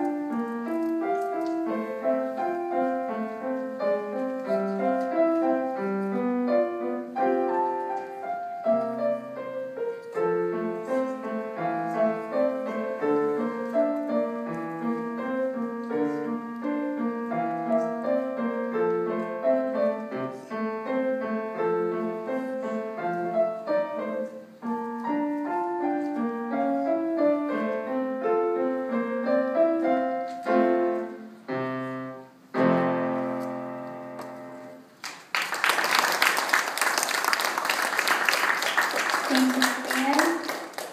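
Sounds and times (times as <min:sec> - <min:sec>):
solo piano piece: 0:00.0 - 0:40.9.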